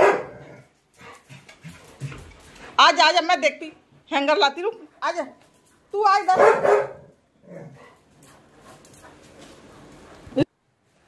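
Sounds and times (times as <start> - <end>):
dog barking: 0.0 - 0.5, 6.3 - 7.1.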